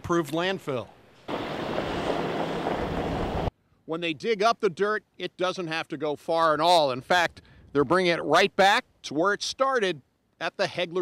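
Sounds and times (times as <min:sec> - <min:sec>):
steady rushing noise: 0:01.3 - 0:03.5
truck engine hum: 0:01.3 - 0:03.5.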